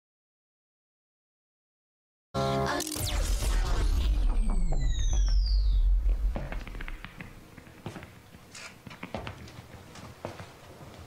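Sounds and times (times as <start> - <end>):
high-pitched whine gliding down: 2.4 - 7.4
deep low rumble: 3.0 - 7.4.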